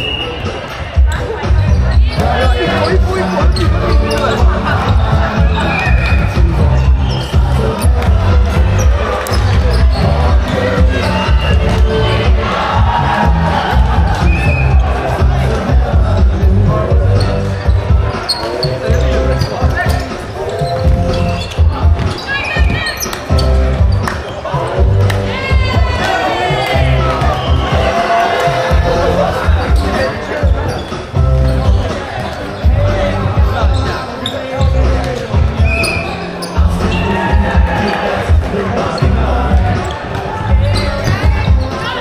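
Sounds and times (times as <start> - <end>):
background music: 0.0 - 42.0
players and spectators calling out: 0.0 - 42.0.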